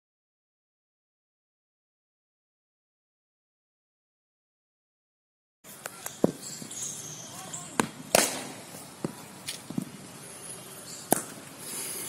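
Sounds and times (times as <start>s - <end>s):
cricket bat hitting ball: 7.8s - 9.2s.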